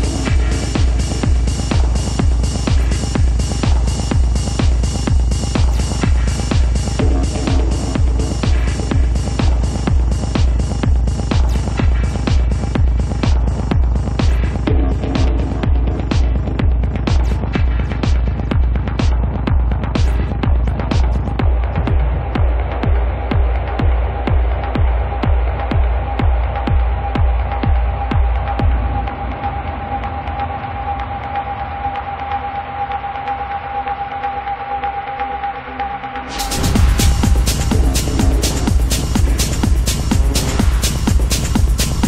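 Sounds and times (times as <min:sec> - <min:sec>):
ticking hi-hats: 0:00.0 - 0:28.9, 0:36.3 - 0:42.0
techno kick drum: 0:00.0 - 0:32.4, 0:36.3 - 0:42.0
steady low bass: 0:00.0 - 0:34.5, 0:35.5 - 0:42.0.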